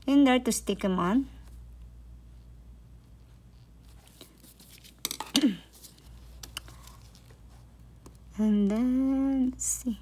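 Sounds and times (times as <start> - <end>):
steady low hum: 0.0 - 10.0
nail brush handling: 4.0 - 8.9.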